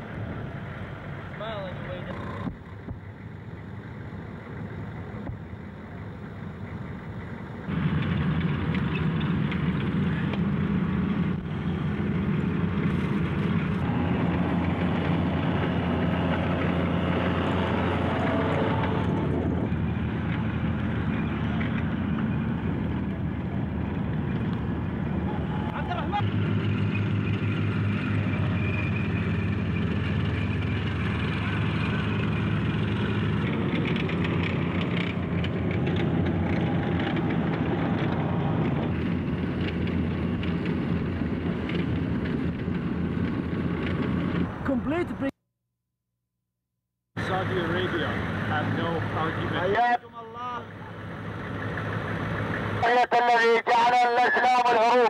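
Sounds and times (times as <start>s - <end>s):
tracked vehicles diesel drone: 0.0s - 45.4s, 47.1s - 55.0s.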